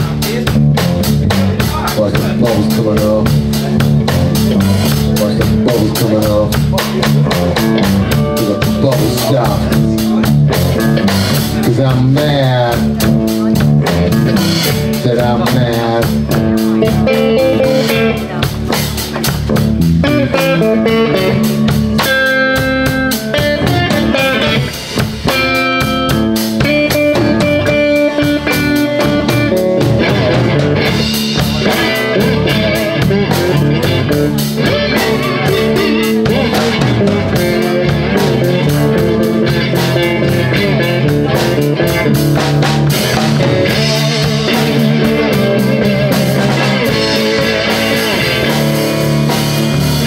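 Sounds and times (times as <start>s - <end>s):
drum kit: 0.0s - 50.0s
electric guitars: 0.0s - 50.0s.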